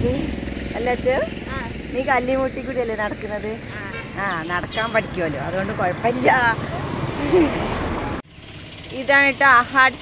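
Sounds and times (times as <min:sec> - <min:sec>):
low steady rumble: 0:00.0 - 0:06.4
people talking: 0:00.0 - 0:07.5, 0:08.9 - 0:10.0.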